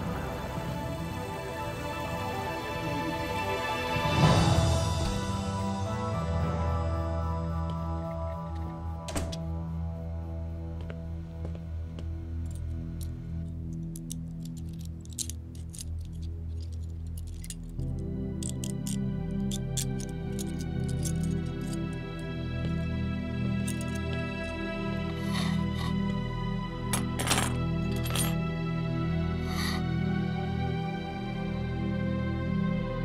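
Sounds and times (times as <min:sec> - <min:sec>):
background score music: 0:00.0 - 0:33.0
handcuffs clinking: 0:12.4 - 0:24.7, 0:26.9 - 0:28.4.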